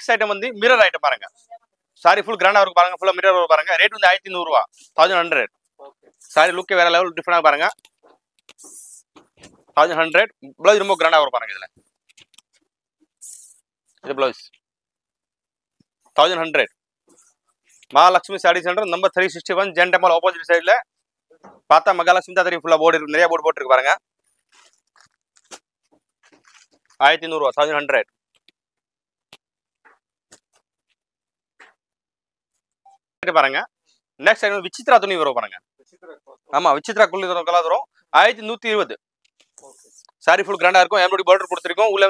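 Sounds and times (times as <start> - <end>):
person speaking: 2.0 - 12.4, 13.2 - 14.5, 38.2 - 42.0
fabric rustling: 24.2 - 27.0
plastic-covered cloth handling: 24.2 - 27.0.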